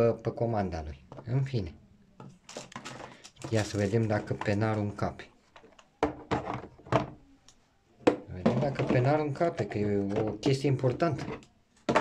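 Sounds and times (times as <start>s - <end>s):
plastic boxes knocking together: 8.0s - 12.0s.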